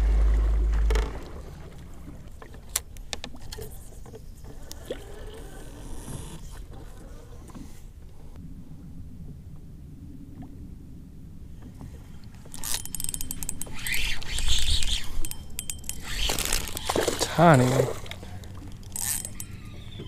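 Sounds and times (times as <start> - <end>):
low rumble: 0.0 - 2.4, 8.2 - 12.5
fishing reel clicking: 12.5 - 17.4, 18.8 - 20.0.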